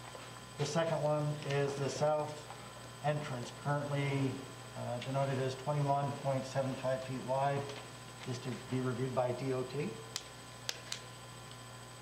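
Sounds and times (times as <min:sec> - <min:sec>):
electrical hum of sound system: 0:00.0 - 0:12.0.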